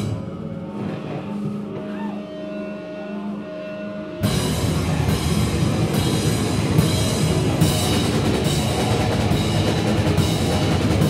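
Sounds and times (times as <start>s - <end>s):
guitar amplifiers humming: 0.0s - 11.0s.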